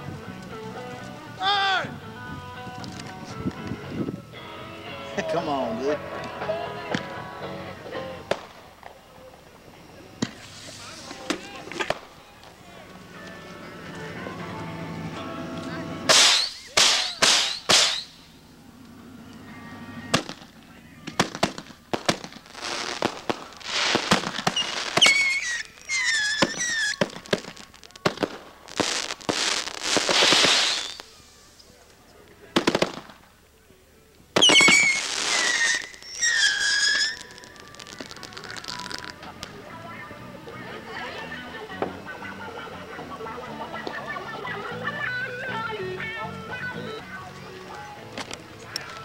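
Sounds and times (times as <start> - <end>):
fireworks hissing and crackling: 5.2 - 45.1, 47.2 - 49.0
high wavering firework tones: 7.0 - 31.8, 34.4 - 45.8
firework bangs: 8.2 - 9.0, 10.2 - 12.2, 16.0 - 18.4, 20.1 - 31.4, 32.5 - 33.3, 34.3 - 39.6.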